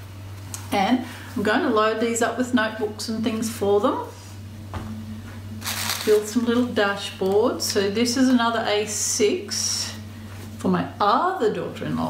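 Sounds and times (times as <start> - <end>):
low steady hum: 0.0 - 12.0
tissue paper rustling: 5.6 - 6.3.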